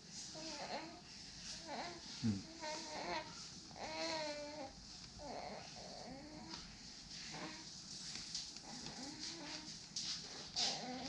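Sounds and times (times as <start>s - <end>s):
baby whimpering and cooing: 0.3s - 6.6s, 10.6s - 11.0s.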